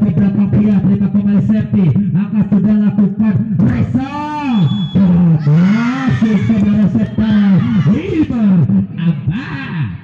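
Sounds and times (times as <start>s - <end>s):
loud voice talking: 0.0s - 9.2s.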